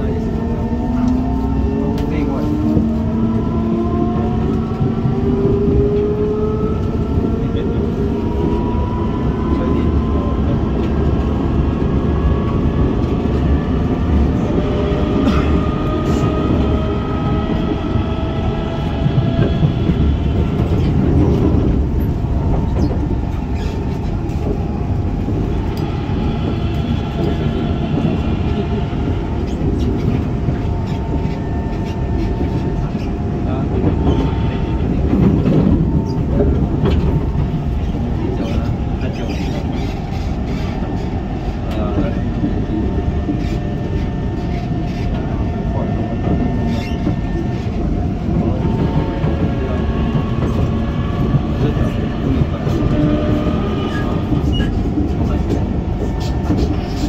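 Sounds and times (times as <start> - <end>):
wheel and rail rumble: 0.0 - 57.0.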